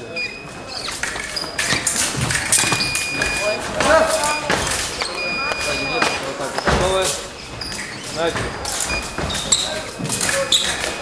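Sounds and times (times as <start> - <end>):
scoring machine beep: 0.1 - 7.0, 8.7 - 11.0.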